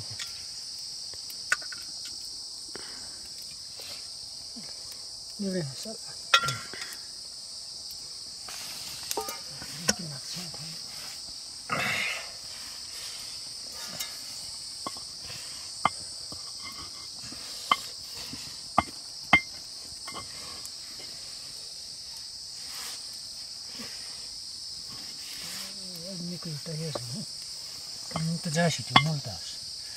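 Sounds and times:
crickets chirping: 0:00.0 - 0:29.9.

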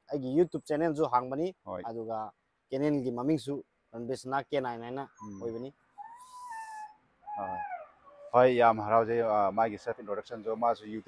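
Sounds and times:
dog whining: 0:05.1 - 0:08.4.

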